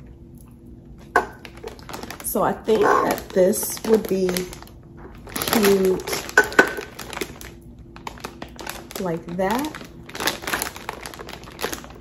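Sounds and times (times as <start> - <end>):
paper crinkling: 1.4 - 12.0.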